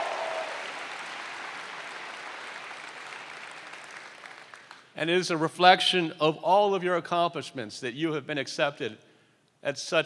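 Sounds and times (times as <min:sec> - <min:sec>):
audience applauding: 0:00.0 - 0:04.8.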